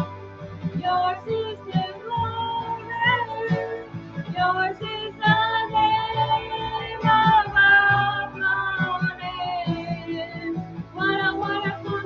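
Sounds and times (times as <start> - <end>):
recorded backing track: 0.0 - 12.0
woman singing: 0.8 - 12.0.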